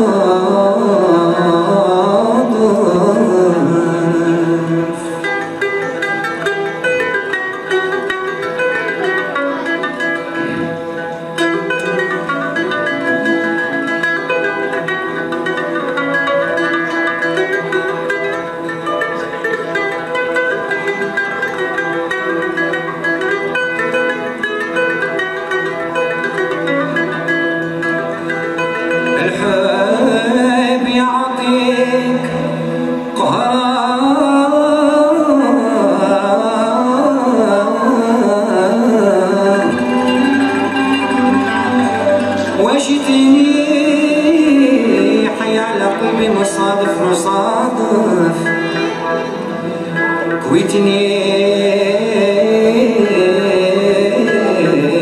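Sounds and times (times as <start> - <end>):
plucked ouds mandolins and guitars: 0.0 - 55.0
violins playing melody: 39.6 - 43.4.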